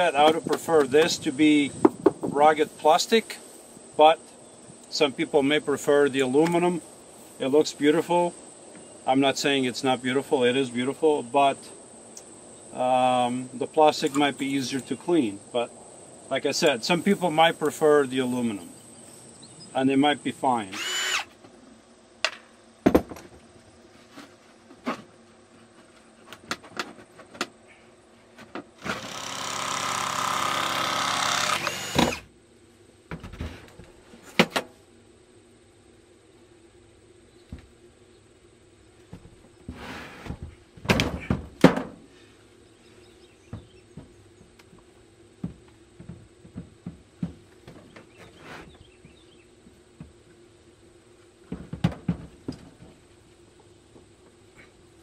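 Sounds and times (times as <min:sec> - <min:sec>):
knocks of boards being handled: 0:01.8 - 0:02.4, 0:22.2 - 0:23.4, 0:39.1 - 0:42.0, 0:51.5 - 0:53.0
cordless drill driving screw: 0:20.8 - 0:21.3, 0:28.8 - 0:32.2.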